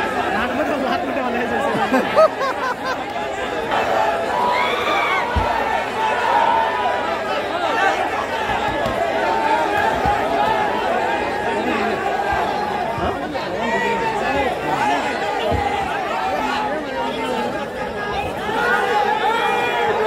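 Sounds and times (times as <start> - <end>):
crowd of men talking: 0.0 - 20.0.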